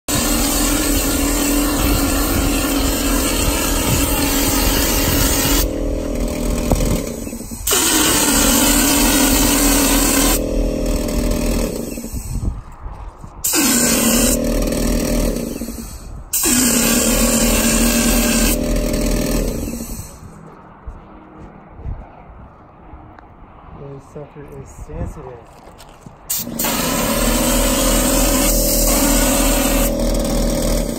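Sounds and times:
motor hum: 0:00.0 - 0:12.7, 0:13.4 - 0:22.0, 0:26.3 - 0:30.9
spray gun hissing: 0:00.1 - 0:11.4, 0:13.4 - 0:14.4, 0:26.3 - 0:30.0.

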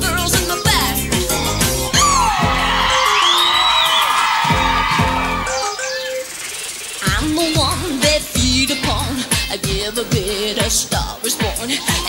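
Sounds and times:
live pop band playing: 0:00.0 - 0:06.4, 0:07.0 - 0:12.0.

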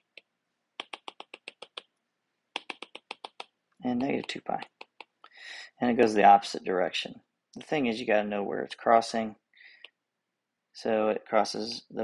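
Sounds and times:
stylus tapping on tablet screen: 0:00.0 - 0:05.2.

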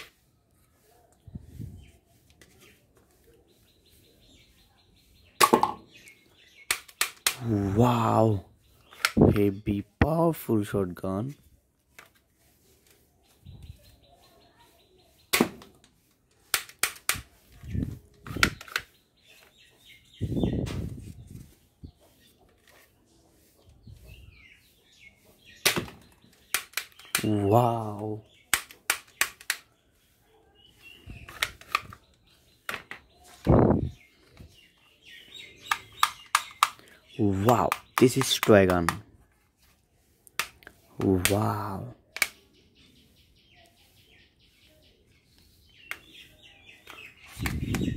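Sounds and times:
plastic toy parts clicking: 0:08.9 - 0:09.2, 0:18.2 - 0:18.9, 0:25.7 - 0:27.3, 0:28.5 - 0:29.7, 0:31.3 - 0:32.0, 0:35.7 - 0:36.9
toy dart pistol clicking: 0:28.5 - 0:29.6.

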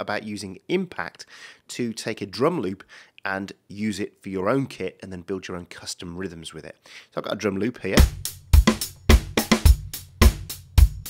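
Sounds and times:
acoustic drum loop: 0:08.0 - 0:11.0.

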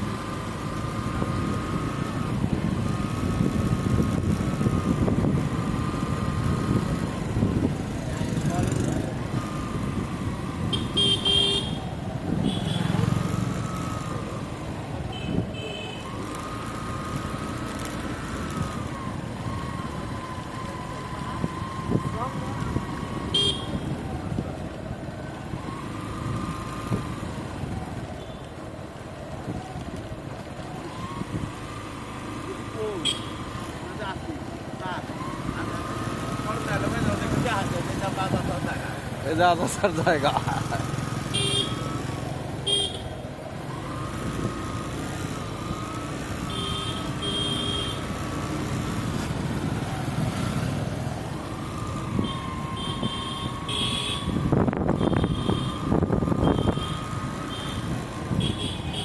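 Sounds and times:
road noise: 0:00.0 - 0:59.0
vehicle engine rumble: 0:00.0 - 0:59.0.

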